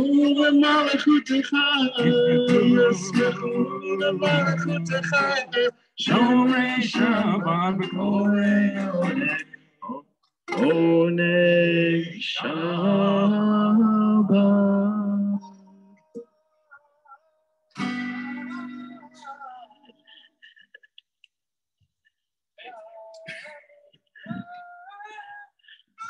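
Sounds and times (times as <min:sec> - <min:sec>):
acoustic guitar chords: 0:00.0 - 0:09.6, 0:10.5 - 0:16.0, 0:17.8 - 0:19.3
person singing: 0:00.0 - 0:20.2, 0:22.6 - 0:26.0.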